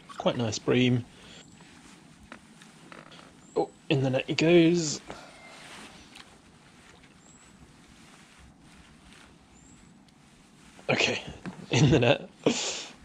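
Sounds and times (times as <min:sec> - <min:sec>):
steady outdoor hiss: 0:00.0 - 0:13.0.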